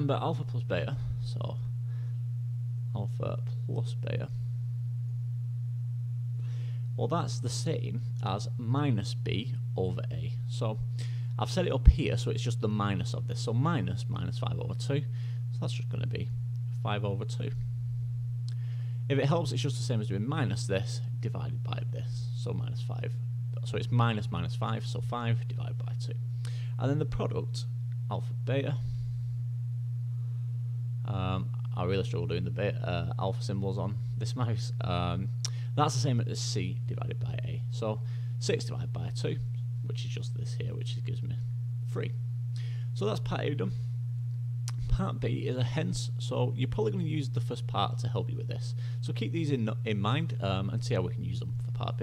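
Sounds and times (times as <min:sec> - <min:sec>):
steady low hum: 0:00.0 - 0:52.0.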